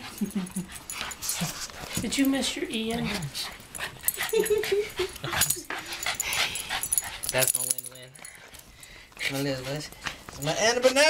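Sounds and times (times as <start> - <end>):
dogs sniffing licking and whimpering: 0.0 - 7.7.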